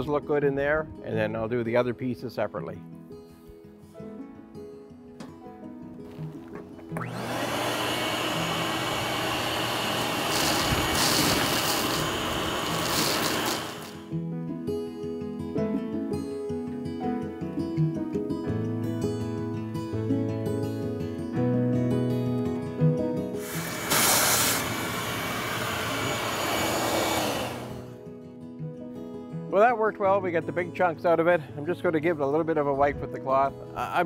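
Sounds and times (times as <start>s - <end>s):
background music: 0.0s - 10.4s, 12.3s - 34.0s
shop vacuum whining: 6.0s - 14.1s, 23.3s - 28.0s.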